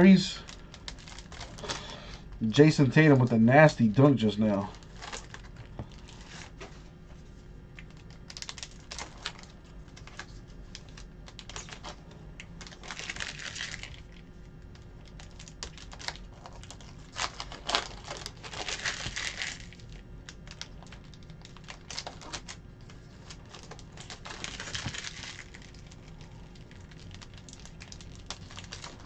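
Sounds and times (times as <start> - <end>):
wrappers crinkling and tearing: 0.0 - 6.8, 7.8 - 29.0.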